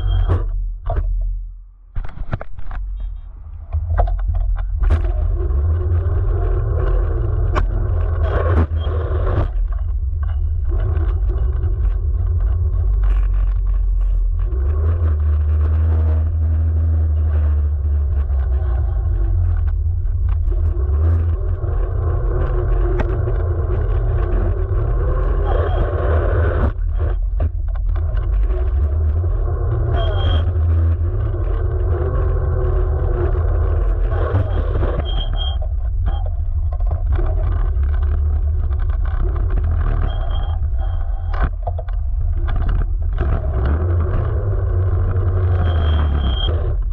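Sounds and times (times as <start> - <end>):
scooter tyre rumbling on asphalt: 2.0 - 46.9.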